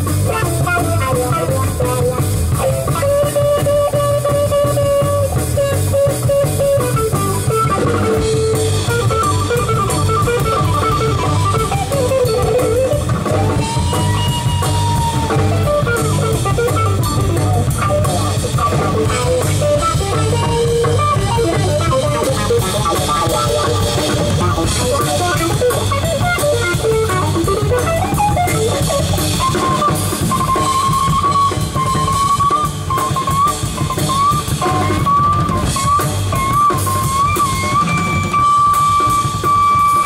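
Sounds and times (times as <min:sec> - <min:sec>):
double bass: 0:00.0 - 0:32.4
alto saxophone: 0:00.0 - 0:40.0
drum kit steady beat: 0:00.0 - 0:40.0
electric guitar: 0:00.0 - 0:40.0.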